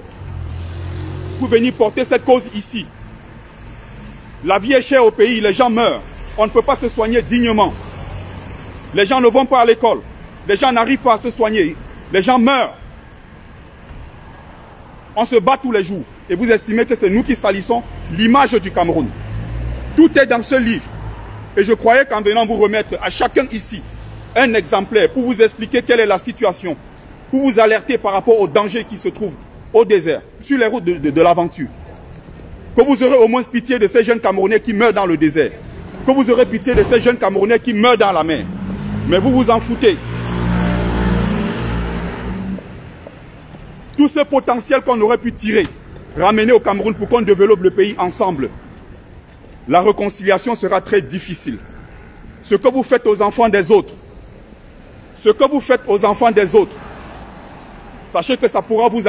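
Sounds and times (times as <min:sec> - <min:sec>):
street traffic hum: 0:00.0 - 0:59.0.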